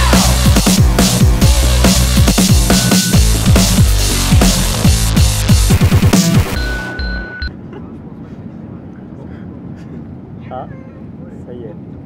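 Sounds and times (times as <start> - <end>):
airliner cabin rumble: 7.5 - 12.0.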